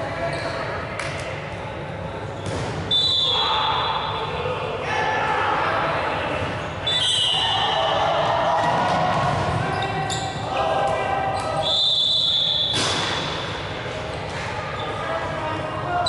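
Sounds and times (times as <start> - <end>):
players shouting: 2.9 - 11.9.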